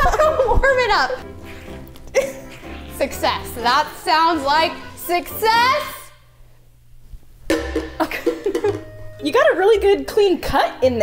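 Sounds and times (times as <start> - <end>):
woman laughing in bursts: 0.0 - 1.0, 2.2 - 2.8.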